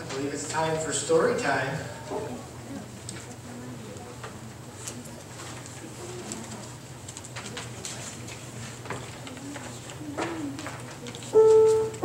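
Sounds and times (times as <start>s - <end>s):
soft clicks and rustles: 3.0s - 11.8s.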